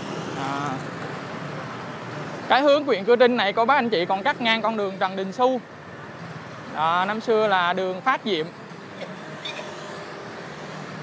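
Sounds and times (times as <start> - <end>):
motorbikes riding past: 8.5 - 11.0.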